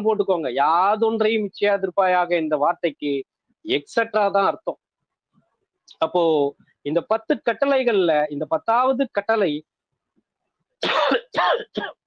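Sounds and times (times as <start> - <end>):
man coughing: 10.8 - 12.0.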